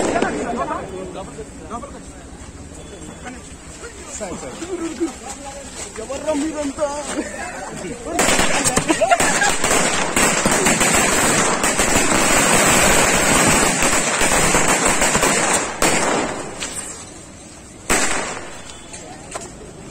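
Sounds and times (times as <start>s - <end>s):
firecrackers crackling: 0.0s - 1.6s, 2.6s - 19.6s.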